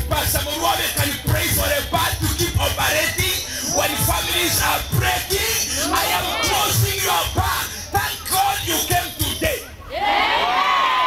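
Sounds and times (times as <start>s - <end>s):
man preaching over loudspeaker: 0.0s - 9.8s.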